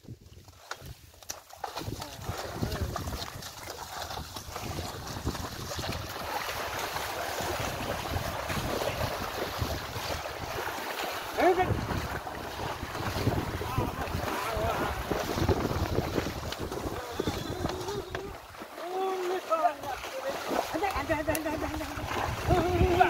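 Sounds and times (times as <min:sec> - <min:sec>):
splashing through muddy water: 0:00.0 - 0:23.0
wind buffeting microphone: 0:01.8 - 0:18.6, 0:19.8 - 0:23.0.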